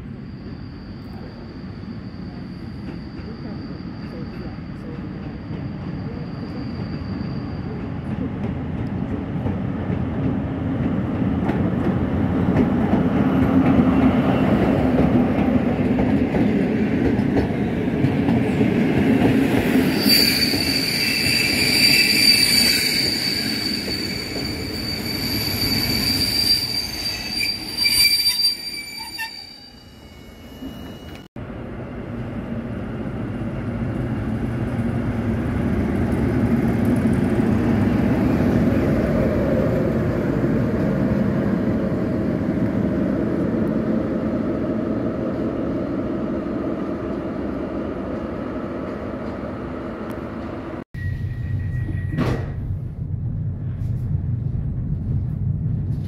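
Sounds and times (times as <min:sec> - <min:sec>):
train wheels squealing: 0:00.0 - 0:08.7, 0:19.6 - 0:31.3, 0:51.0 - 0:52.6
diesel locomotive rumbling: 0:00.0 - 0:27.9, 0:30.7 - 0:56.0
diesel train rumbling past: 0:30.1 - 0:56.0.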